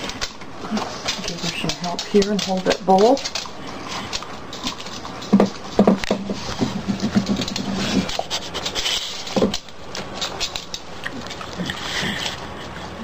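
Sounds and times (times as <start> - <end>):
dog licking and eating from bowl: 0.0 - 13.0.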